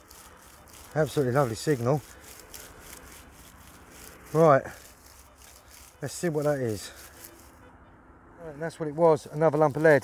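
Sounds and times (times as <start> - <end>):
metal detector coil rustling over straw: 0.0 - 7.7, 8.6 - 10.0.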